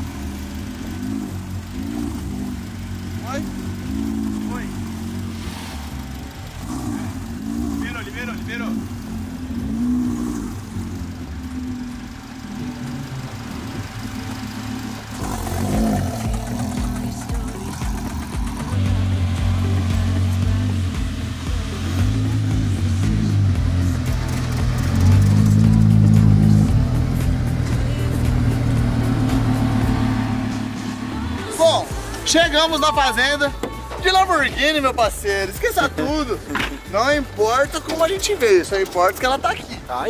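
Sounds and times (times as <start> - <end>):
car engine running: 0.0 - 40.0
background music with steady beat: 15.1 - 40.0.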